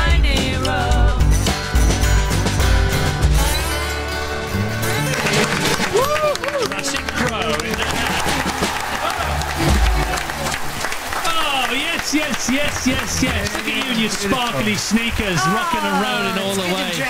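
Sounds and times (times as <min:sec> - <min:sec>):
live band playing: 0:00.0 - 0:11.4
people clapping: 0:04.8 - 0:17.0
people whooping and cheering: 0:05.0 - 0:17.0
people talking: 0:05.1 - 0:08.4, 0:09.0 - 0:17.0.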